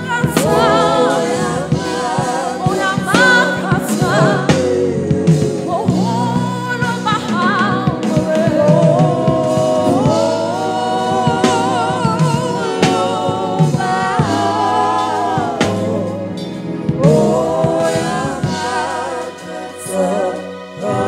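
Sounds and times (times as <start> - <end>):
woman singing with vibrato: 0.0 - 16.3
backing singers: 0.0 - 21.0
sustained musical accompaniment: 0.0 - 21.0.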